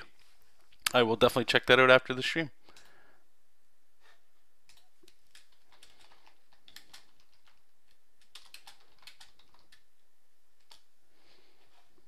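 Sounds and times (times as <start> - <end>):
typing on computer keyboard: 4.7 - 9.9.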